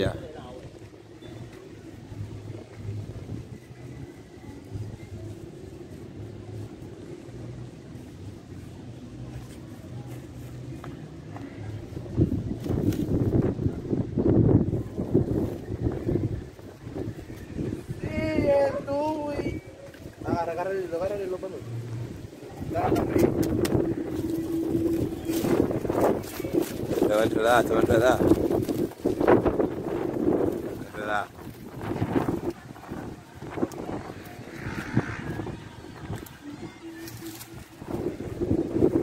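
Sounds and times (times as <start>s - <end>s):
low outdoor rumble: 0.0s - 39.0s.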